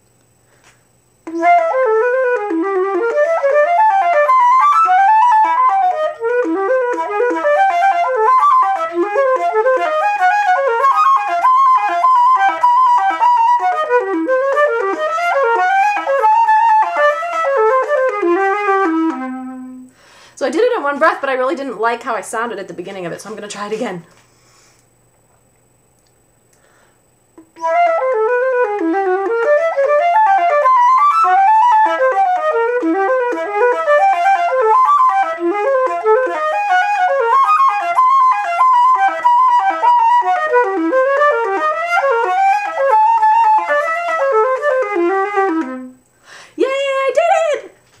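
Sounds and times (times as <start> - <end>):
flute playing fast run: 1.3 - 19.9, 27.6 - 46.0.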